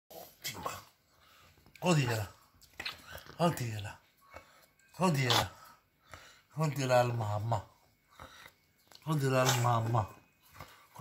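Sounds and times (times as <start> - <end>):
man's voice: 9.0 - 10.2.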